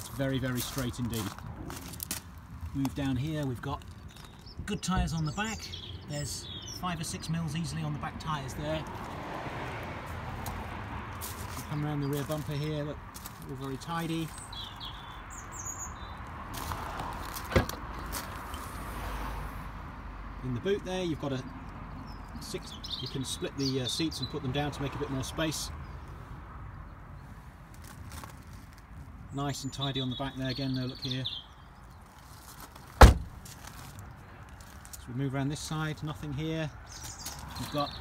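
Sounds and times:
distant vehicle passing: 7.1s - 13.4s, 14.3s - 23.6s.

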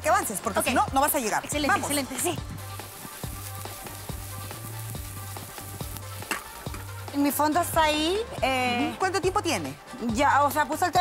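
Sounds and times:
background music with beat: 0.0s - 11.0s
onion sizzling in oil: 0.3s - 9.6s.

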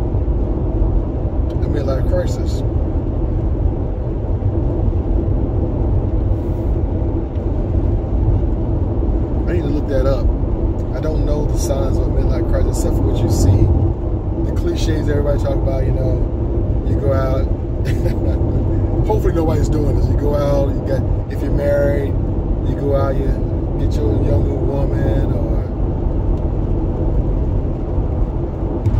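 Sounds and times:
car road and engine rumble: 0.0s - 28.9s
man talking: 1.5s - 2.6s, 9.4s - 10.3s, 10.9s - 13.8s, 14.5s - 16.2s, 16.8s - 25.7s.

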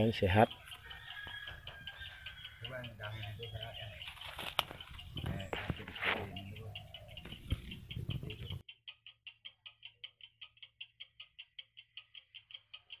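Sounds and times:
outdoor background noise: 0.0s - 13.0s
rapid high-pitched chirping: 0.0s - 13.0s.

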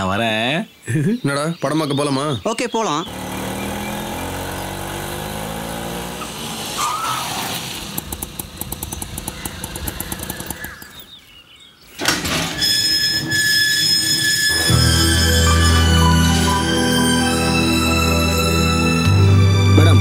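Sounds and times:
small engine running: 3.0s - 11.2s
engine squeal: 3.1s - 5.5s, 6.1s - 11.2s, 12.0s - 19.1s
fast rattling tick: 7.8s - 11.0s
music with chiming tones: 14.6s - 20.0s
deep bass: 14.9s - 20.0s.

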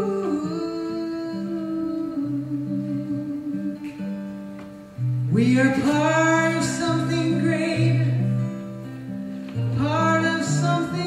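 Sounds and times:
acoustic guitar picked notes: 0.0s - 11.0s.

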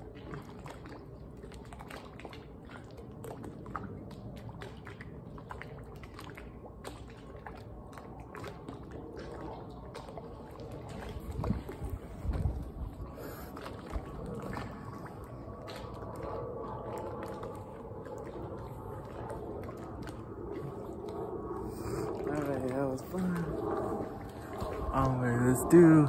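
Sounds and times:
water sloshing and splashing: 0.0s - 26.0s.

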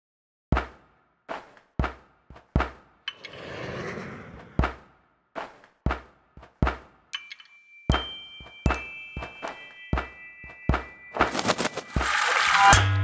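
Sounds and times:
whoosh: 3.1s - 4.9s.

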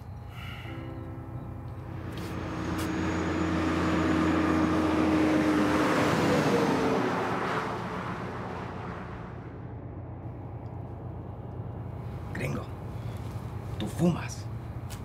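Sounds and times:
truck driving past: 0.6s - 13.8s.

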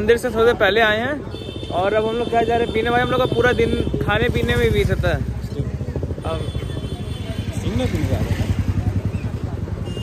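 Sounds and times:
voices: 0.0s - 10.0s
motorcycle engine running: 1.4s - 10.0s.

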